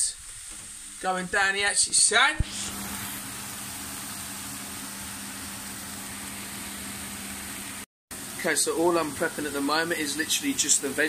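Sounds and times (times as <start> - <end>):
vegetables sizzling in a frying pan: 0.0 - 11.0.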